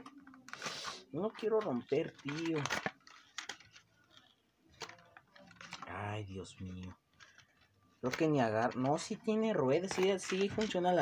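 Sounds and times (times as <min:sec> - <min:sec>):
plastic packaging rustling: 0:00.0 - 0:11.0.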